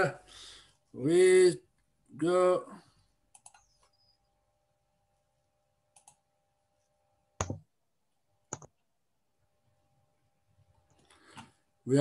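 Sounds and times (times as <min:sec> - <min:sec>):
faint steady hum: 0:00.0 - 0:12.0
computer mouse clicking: 0:03.3 - 0:03.8, 0:05.9 - 0:06.2, 0:08.5 - 0:08.7.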